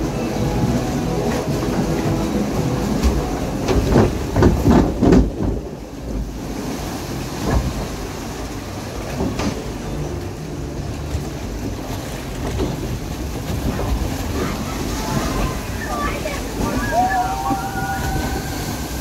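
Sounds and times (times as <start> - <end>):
boat hull rumble: 0.0 - 19.0
rushing water: 0.0 - 19.0
knocks and bumps: 3.0 - 6.3.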